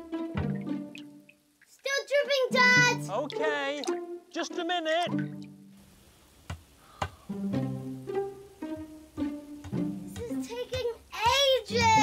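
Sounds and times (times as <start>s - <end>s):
child singing: 1.9s - 3.2s, 10.2s - 12.0s.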